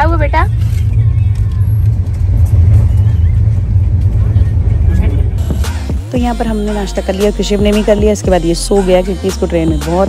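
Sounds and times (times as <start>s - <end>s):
train rumbling inside coach: 0.0s - 5.7s.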